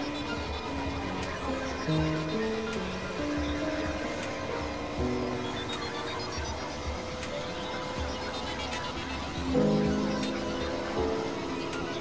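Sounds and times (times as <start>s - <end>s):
synthesizer drone tones: 0.0s - 12.0s.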